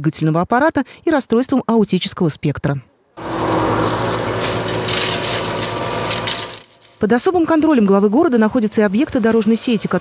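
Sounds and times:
tools scraping through crushed stone: 3.2s - 7.3s
excavator engine running: 3.2s - 10.0s.

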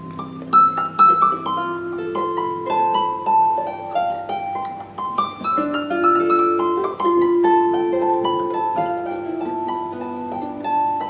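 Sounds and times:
harp melody: 0.0s - 11.0s.

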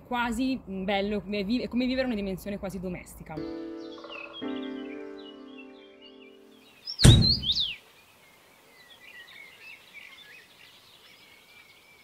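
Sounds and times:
faint birdsong: 3.1s - 12.0s
held music chord: 3.4s - 6.7s
deep boom with swoosh: 7.0s - 7.6s.

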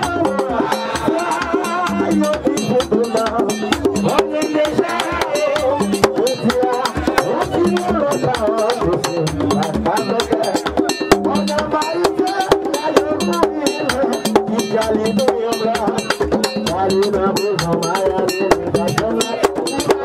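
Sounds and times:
drums and struck percussion: 0.0s - 20.0s.

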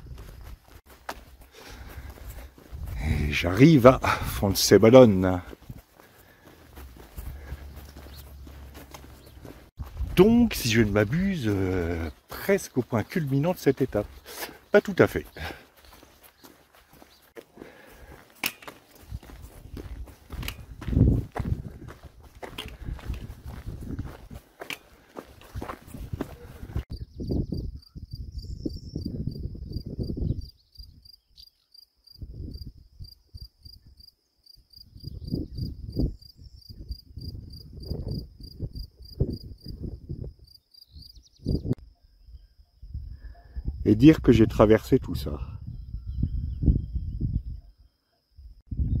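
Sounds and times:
footsteps on dirt track: 0.0s - 26.9s
wind: 0.0s - 49.0s.

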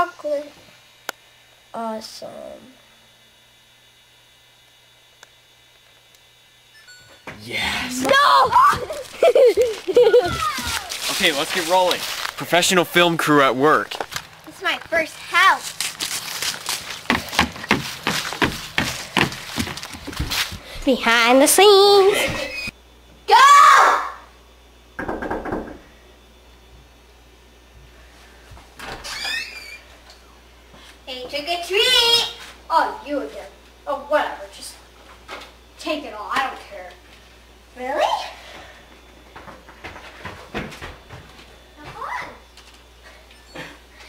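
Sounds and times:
low electrical hum: 0.0s - 44.0s
loud shout: 7.4s - 9.0s, 10.1s - 11.0s, 23.3s - 24.3s
knocks on a door: 25.0s - 25.8s.

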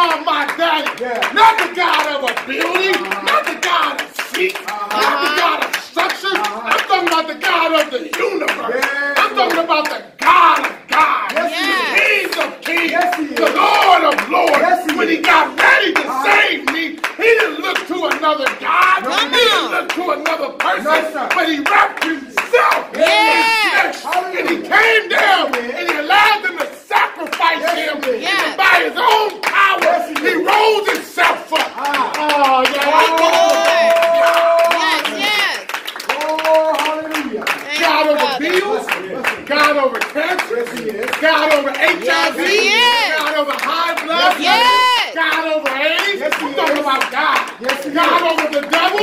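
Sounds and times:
man shouting: 0.0s - 40.0s, 40.8s - 49.0s
hands clapping: 0.0s - 49.0s
preacher's loud impassioned voice: 0.0s - 49.0s.

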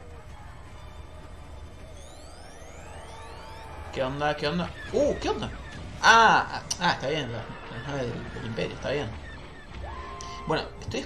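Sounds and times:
rising whines: 0.0s - 11.0s.

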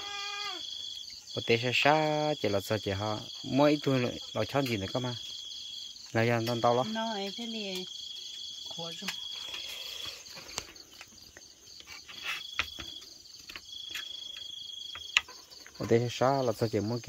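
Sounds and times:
insect high trill: 0.0s - 17.0s
pulsing insect chorus: 0.0s - 17.0s.

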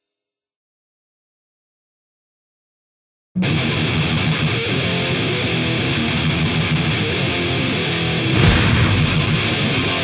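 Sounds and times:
distorted electric guitar riff: 3.4s - 10.0s.

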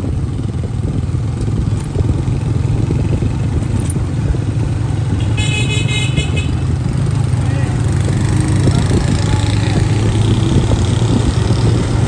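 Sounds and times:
motorcycle engine rumbling: 0.0s - 12.0s
horn honking: 5.1s - 6.8s.

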